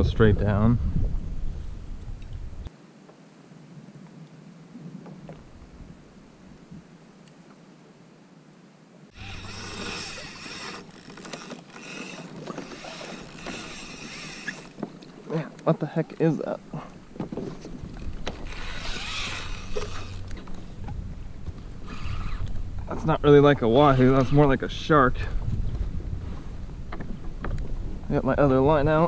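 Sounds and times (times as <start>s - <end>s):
wind on microphone: 0.0s - 2.7s, 16.8s - 29.0s
water sloshing against kayak hull: 9.1s - 23.0s.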